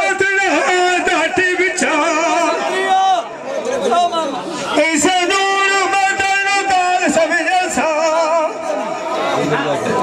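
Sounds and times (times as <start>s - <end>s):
man singing through loudspeaker: 0.0s - 3.4s, 4.6s - 10.0s
crowd chatter: 0.0s - 10.0s
man speaking: 0.0s - 10.0s.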